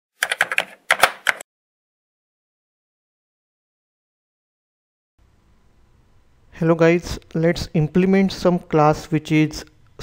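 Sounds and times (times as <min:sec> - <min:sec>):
keyboard typing clicks: 0:00.2 - 0:01.4.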